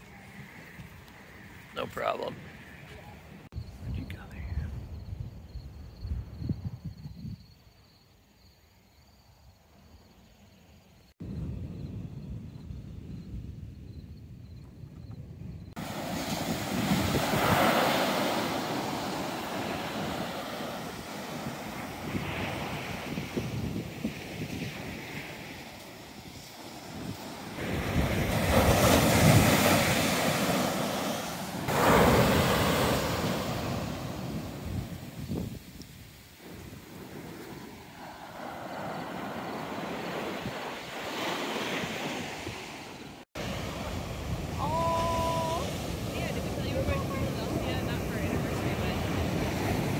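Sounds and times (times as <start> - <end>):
wind on microphone: 2.3 - 7.6, 11.2 - 49.9
ocean surf breaking on beach: 15.8 - 49.9.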